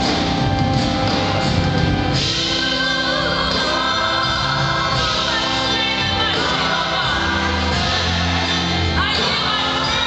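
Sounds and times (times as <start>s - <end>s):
instrumental backing: 0.0s - 10.0s
group singing gospel song: 2.3s - 10.0s.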